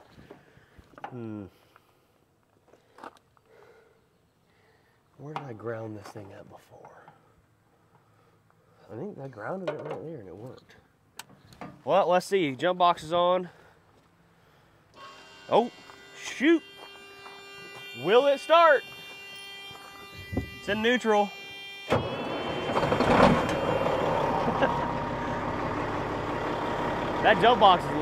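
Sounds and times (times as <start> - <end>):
electric warning buzzer: 15.0 - 27.8.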